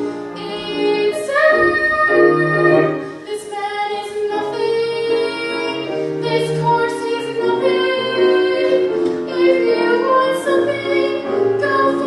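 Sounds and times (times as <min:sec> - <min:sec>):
grand piano: 0:00.0 - 0:12.0
woman singing: 0:00.4 - 0:12.0.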